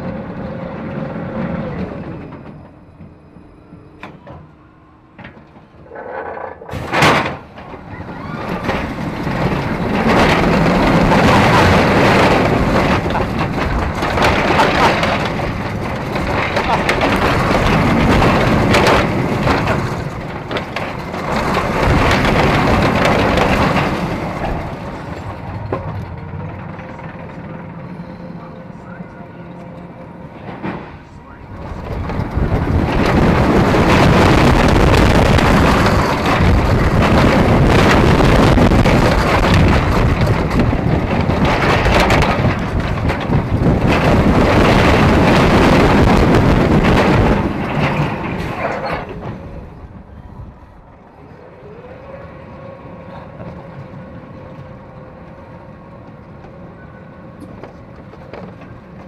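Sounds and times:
roller coaster wheels roaring: 0:00.0 - 0:59.0
wind rushing on camera: 0:31.2 - 0:56.6.

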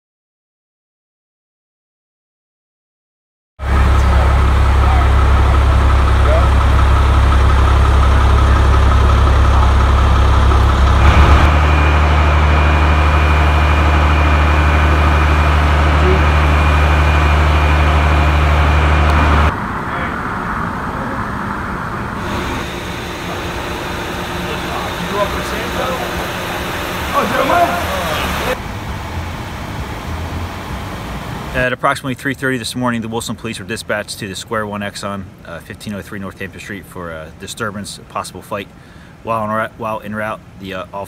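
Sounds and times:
vehicle engine idling: 0:03.6 - 0:31.7.

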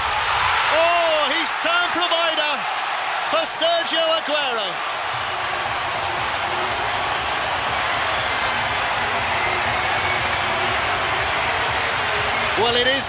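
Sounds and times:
stadium crowd cheering: 0:00.0 - 0:13.0.

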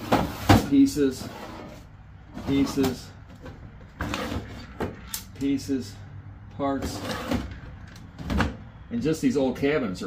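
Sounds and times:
drawer scraping: 0:00.0 - 0:05.0, 0:06.8 - 0:08.6
wooden drawers sliding: 0:04.0 - 0:05.0, 0:06.8 - 0:07.7.

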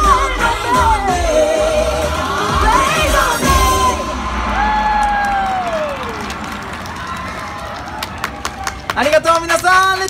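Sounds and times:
pop song: 0:00.0 - 0:04.9
audience cheering and applauding: 0:03.8 - 0:09.6.

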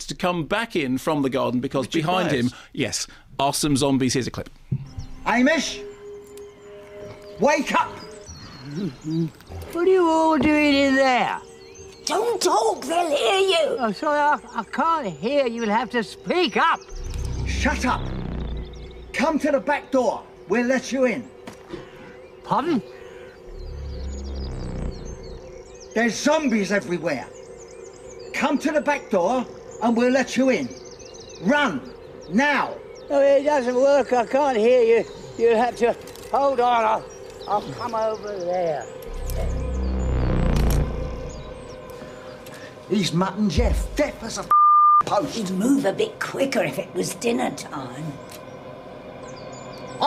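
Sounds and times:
birds chirping: 0:00.0 - 0:50.0
low droning note: 0:16.9 - 0:20.5, 0:23.1 - 0:26.0, 0:39.0 - 0:44.1.

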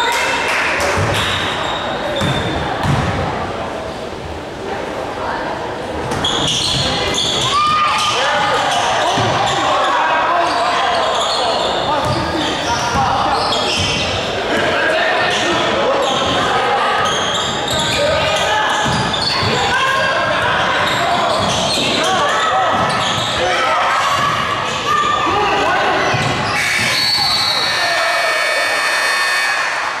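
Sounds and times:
voices echoing in a hall: 0:00.0 - 0:30.0
basketball bouncing on wooden floor: 0:02.2 - 0:03.2.

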